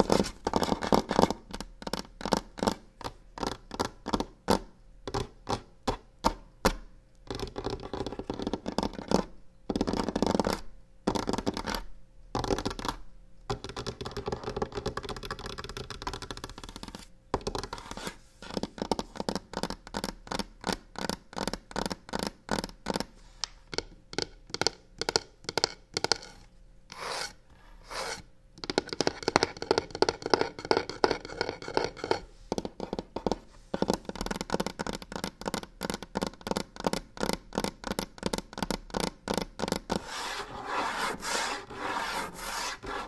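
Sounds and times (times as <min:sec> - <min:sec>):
fingernails scratching wood: 0:26.9 - 0:28.2, 0:39.9 - 0:43.0
fingernails tapping: 0:28.0 - 0:43.0.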